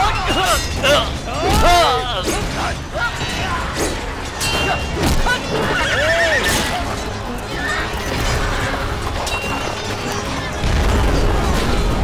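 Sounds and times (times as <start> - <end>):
people shouting: 0.0 - 8.8
horses neighing: 0.0 - 9.4
background music: 0.0 - 12.0
weapons clashing: 0.0 - 12.0.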